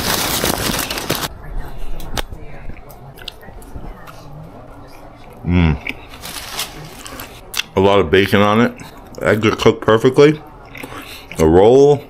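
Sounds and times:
person chewing a sandwich: 4.9s - 9.7s, 10.6s - 11.5s.

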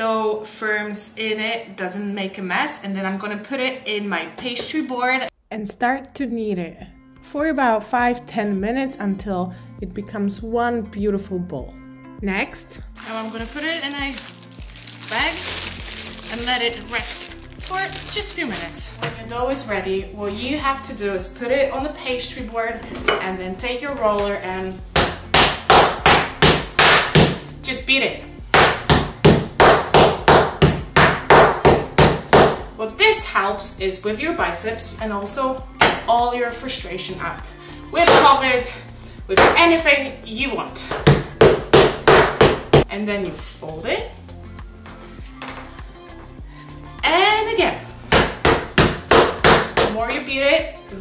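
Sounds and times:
soft background music: 0.0s - 51.0s.

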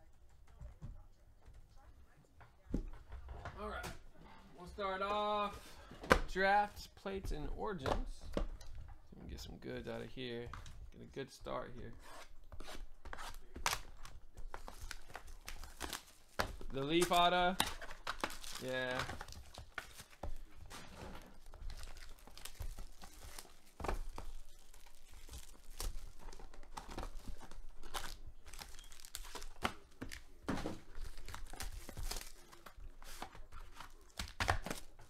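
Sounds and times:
foil wrappers crinkling: 13.4s - 35.0s.

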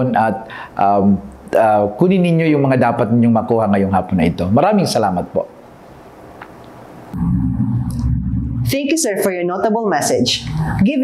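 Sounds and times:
low steady tone: 7.1s - 8.8s.

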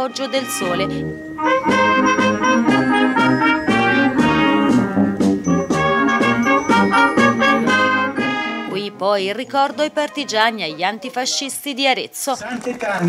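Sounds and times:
brass band playing: 0.0s - 9.2s.

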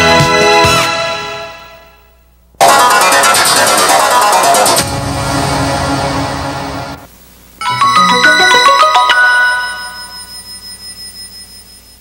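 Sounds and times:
closing music: 2.6s - 10.2s
chiming logo jingle: 7.6s - 10.6s.

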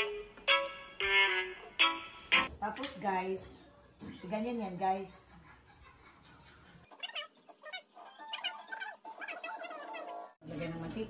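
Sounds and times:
high melodic music: 0.0s - 2.5s.

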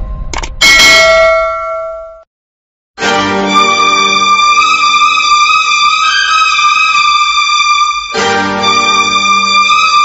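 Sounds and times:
bell-like tone ringing: 0.6s - 2.3s
backing music: 3.0s - 10.0s.

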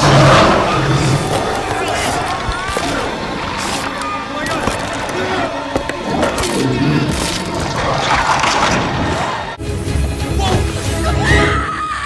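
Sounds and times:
horror film music: 0.0s - 12.0s.

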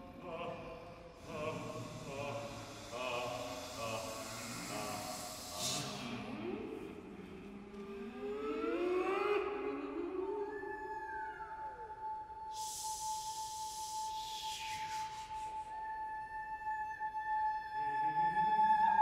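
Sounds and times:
breathy hiss sweeping downward: 0.0s - 7.2s, 12.5s - 15.8s
choir voices sliding upward: 0.0s - 16.7s.

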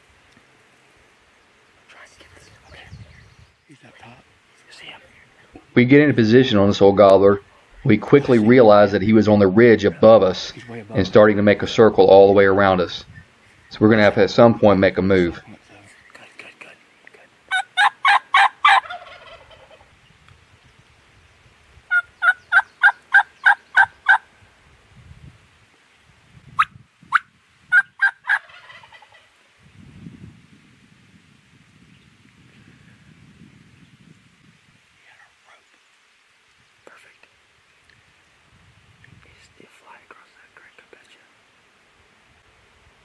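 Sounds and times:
wild turkey calling: 17.5s - 19.9s, 21.9s - 24.3s, 26.6s - 29.4s.

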